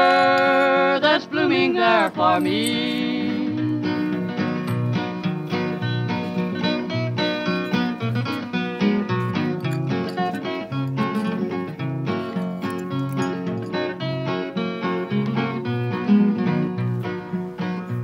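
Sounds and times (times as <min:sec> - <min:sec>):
acoustic guitar melody: 0:00.0 - 0:18.0.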